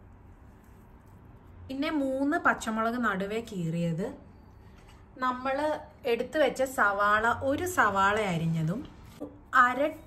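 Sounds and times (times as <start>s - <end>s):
woman speaking: 1.7s - 4.2s, 5.2s - 10.0s.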